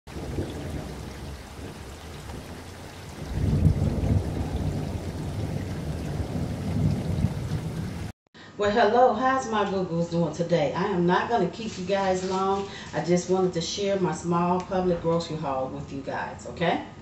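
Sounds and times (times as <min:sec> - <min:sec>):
rain hissing: 0:00.1 - 0:08.1
rolling thunder: 0:00.1 - 0:08.1.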